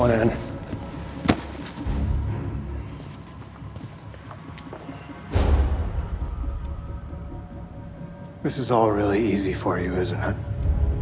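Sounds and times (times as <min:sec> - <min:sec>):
low background drone: 0:01.8 - 0:11.0.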